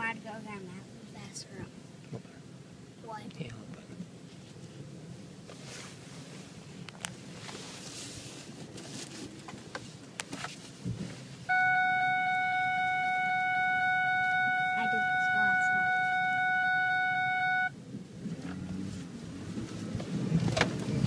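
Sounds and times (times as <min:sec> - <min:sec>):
low vehicle cabin noise: 0:00.0 - 0:21.0
loud steady single-pitched tone: 0:11.5 - 0:17.8.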